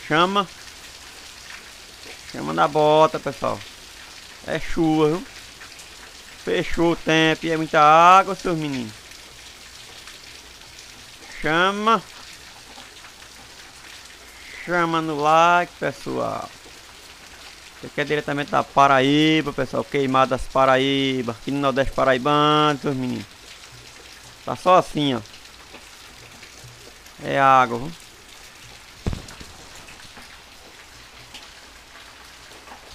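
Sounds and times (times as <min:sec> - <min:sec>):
water splashing onto pavement: 0:00.0 - 0:19.6, 0:22.2 - 0:32.9
heavy rain falling: 0:00.0 - 0:32.9
sharp thump: 0:29.0 - 0:30.0.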